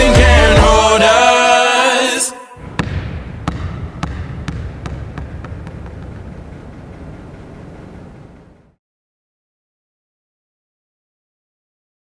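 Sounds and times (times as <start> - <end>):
basketball bouncing on wooden floor: 2.6 - 8.5
low room rumble: 2.6 - 8.8.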